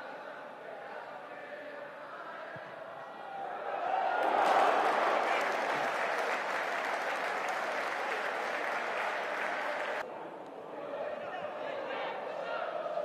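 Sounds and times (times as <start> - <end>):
stadium crowd applauding: 3.8 - 10.1.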